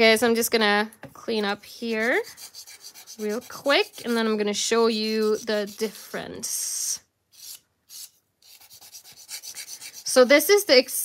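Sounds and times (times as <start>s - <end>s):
nail file rubbing: 1.8s - 6.2s, 7.3s - 10.4s.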